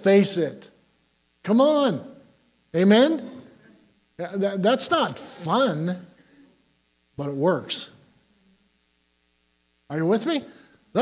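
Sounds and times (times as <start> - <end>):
man's voice: 0.0 - 0.7, 1.5 - 2.2, 2.8 - 3.5, 4.2 - 6.2, 7.2 - 8.0, 9.9 - 11.0
faint steady hum: 0.0 - 11.0.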